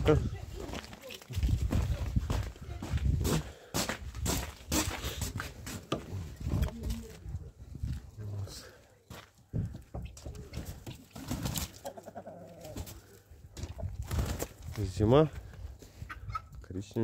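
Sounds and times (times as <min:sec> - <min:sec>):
footsteps: 0:00.4 - 0:11.8
poultry calling: 0:11.7 - 0:13.0.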